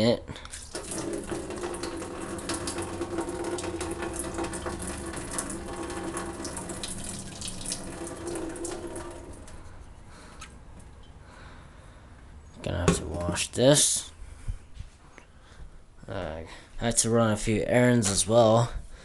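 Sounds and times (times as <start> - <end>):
water pouring into a steel sink: 0.5 - 9.6.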